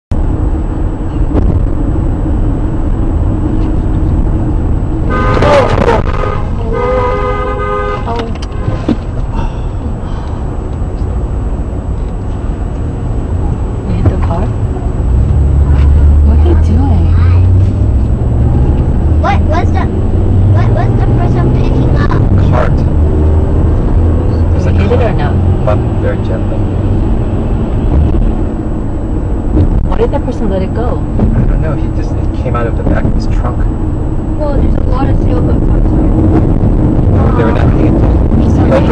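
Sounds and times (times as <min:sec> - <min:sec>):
road and engine rumble in car: 0:00.1 - 0:38.9
car horn: 0:05.0 - 0:09.0.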